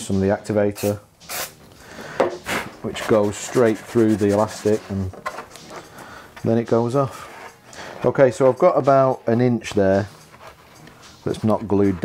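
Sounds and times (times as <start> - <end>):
aerosol can spraying: 0.8 - 1.6.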